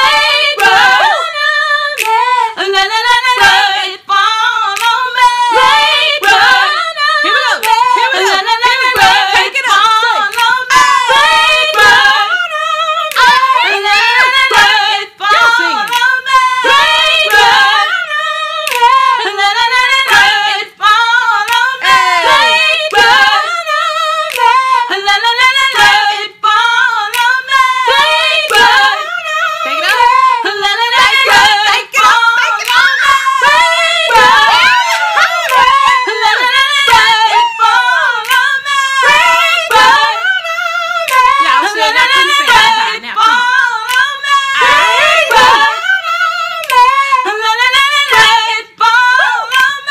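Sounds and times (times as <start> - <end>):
high voice singing a cappella: 0.0 - 49.9.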